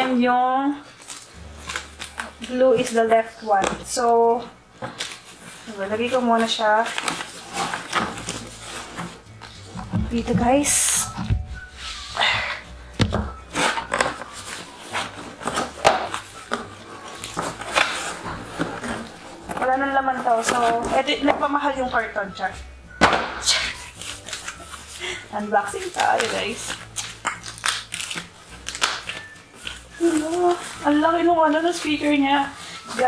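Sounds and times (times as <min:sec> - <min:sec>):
plastic and cardboard rustling: 0:00.0 - 0:33.0
box scraping: 0:01.5 - 0:12.4, 0:13.1 - 0:22.5.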